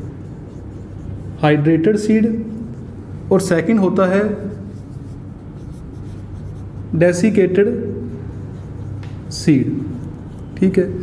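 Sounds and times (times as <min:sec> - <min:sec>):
marker pen on whiteboard: 0:00.0 - 0:11.0.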